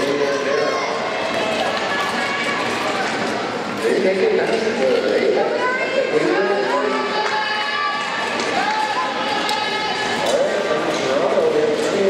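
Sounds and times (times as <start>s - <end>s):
crowd hubbub: 0.0s - 12.0s
spectators shouting: 5.6s - 10.7s.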